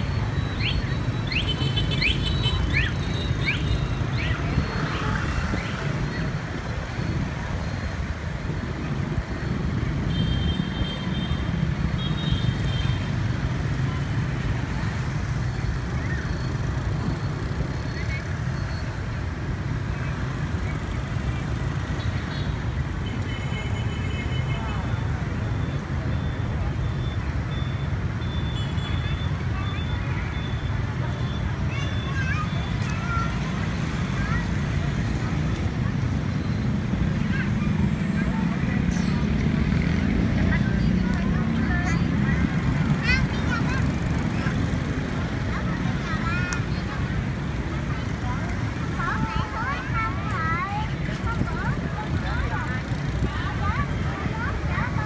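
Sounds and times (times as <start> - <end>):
road and wind rumble: 0.0 - 55.0
scooters passing: 0.0 - 55.0.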